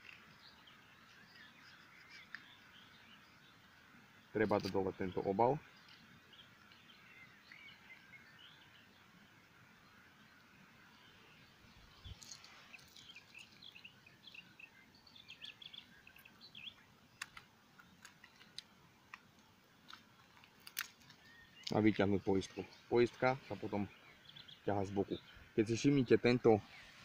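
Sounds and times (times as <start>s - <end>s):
faint bird chirps: 0.0s - 3.6s, 4.3s - 9.1s, 9.7s - 18.8s
wrapper clicks and crinkles: 19.8s - 21.8s.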